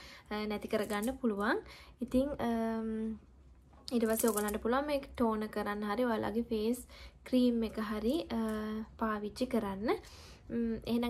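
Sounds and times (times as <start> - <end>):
woman speaking: 0.3 - 3.2, 3.9 - 11.0.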